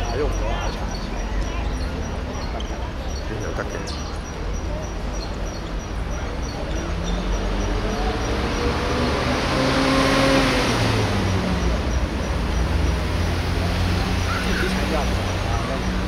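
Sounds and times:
road traffic: 0:00.0 - 0:16.0
vehicle passing: 0:06.3 - 0:16.0.

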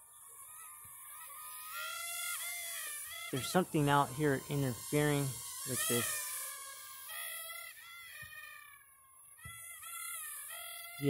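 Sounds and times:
toy quadcopter motors whining: 0:00.0 - 0:11.0.

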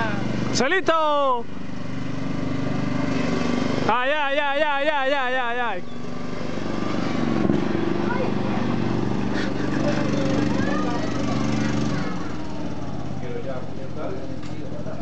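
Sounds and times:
ride-on lawn mower engine running: 0:00.0 - 0:15.0
faint voices: 0:07.9 - 0:15.0.

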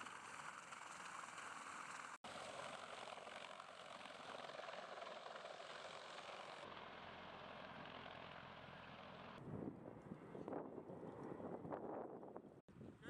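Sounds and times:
helicopter rotor drone: 0:00.0 - 0:12.5
wind rumble on microphone: 0:09.4 - 0:13.0.

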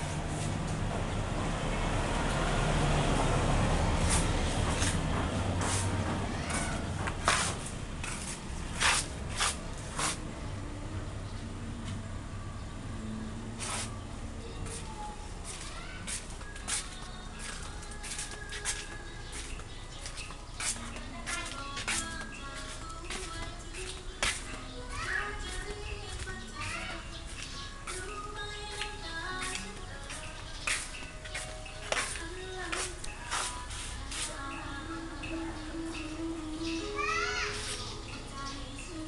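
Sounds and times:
footsteps scuffing on pavement: 0:03.9 - 0:10.3, 0:14.6 - 0:34.4
children's voices: 0:05.6 - 0:07.3, 0:13.6 - 0:31.0, 0:35.4 - 0:39.0
background music: 0:16.2 - 0:39.0.

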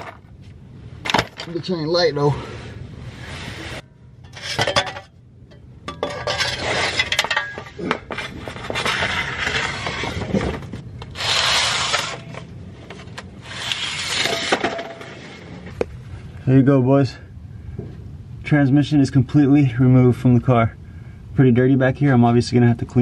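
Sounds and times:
rubbing and scraping: 0:02.5 - 0:05.1, 0:05.9 - 0:15.8.

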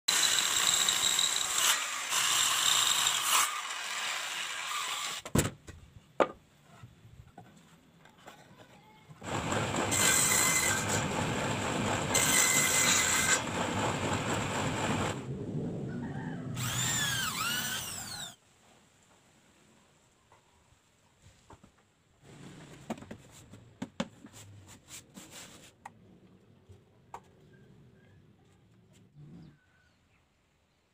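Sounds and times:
circular saw cutting wood: 0:00.1 - 0:05.2, 0:09.2 - 0:15.2, 0:16.6 - 0:18.4.

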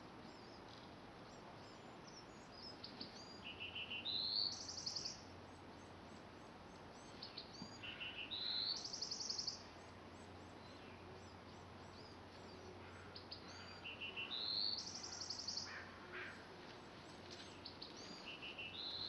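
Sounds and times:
birds chirping faintly: 0:00.0 - 0:19.0
songbird trilling song: 0:00.0 - 0:19.0.

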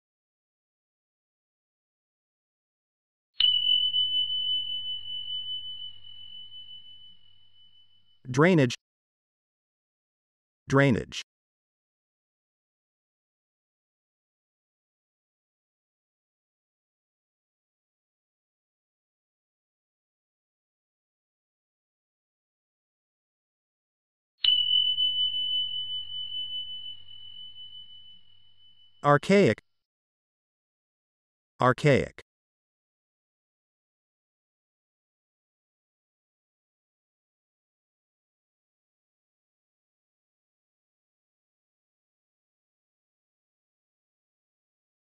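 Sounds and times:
high-pitched chime: 0:03.4 - 0:08.2, 0:24.4 - 0:29.5.

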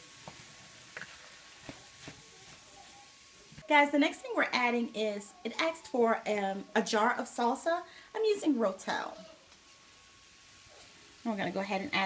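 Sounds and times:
wooden spoon stirring rice in a pan: 0:00.0 - 0:03.1.

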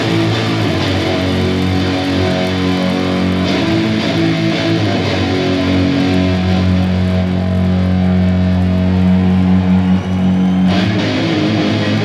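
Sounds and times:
distorted electric guitar solo: 0:00.0 - 0:12.0.

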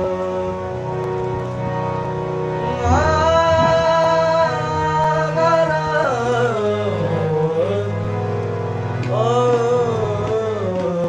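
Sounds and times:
harmonium drone: 0:00.0 - 0:11.0
young man singing long note: 0:02.7 - 0:08.0.

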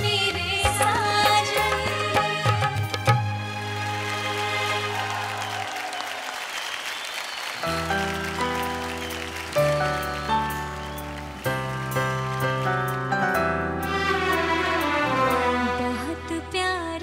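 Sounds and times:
audience clapping: 0:03.0 - 0:13.4.

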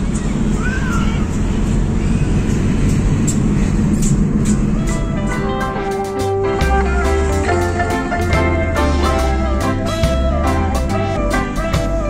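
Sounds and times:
car engine and road rumble: 0:00.0 - 0:12.0
music: 0:04.0 - 0:12.0.

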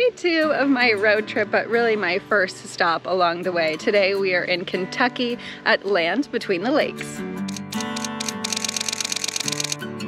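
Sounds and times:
background music: 0:00.0 - 0:10.0
rapid typewriter-like clicks: 0:07.5 - 0:09.8.

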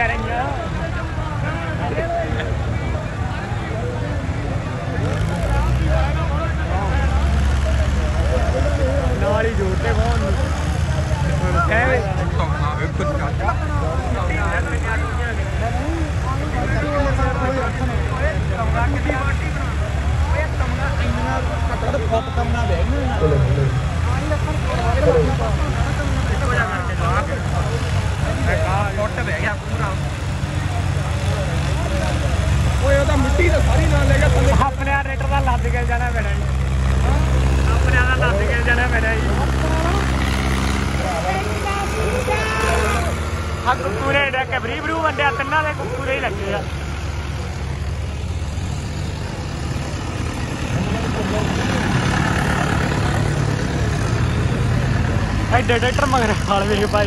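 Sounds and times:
crowd voices: 0:00.0 - 0:57.0
tractor diesel engines rumbling: 0:00.0 - 0:57.0.

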